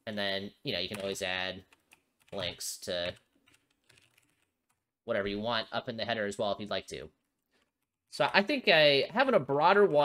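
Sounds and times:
faint keyboard typing: 0:00.8 - 0:04.9, 0:06.9 - 0:08.7.

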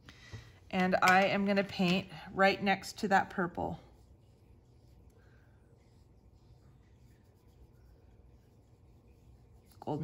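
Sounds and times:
brush scratching on paper: 0:03.1 - 0:10.0.

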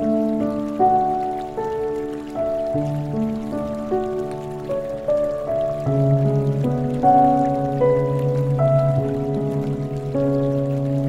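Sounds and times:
rain pattering: 0:00.0 - 0:11.0
slow calm piano music: 0:00.0 - 0:11.0.

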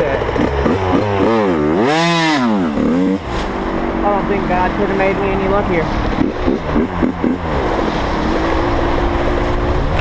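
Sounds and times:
dirt bike engine revving: 0:00.0 - 0:10.0.

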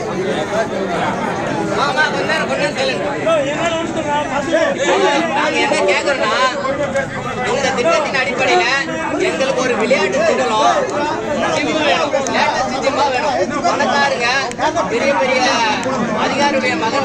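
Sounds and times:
crowd chatter: 0:00.0 - 0:17.0
men talking over one another: 0:00.0 - 0:17.0.

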